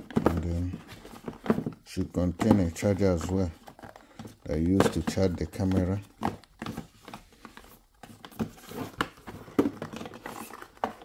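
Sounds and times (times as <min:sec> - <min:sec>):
cardboard boxes handled: 0:00.0 - 0:11.0.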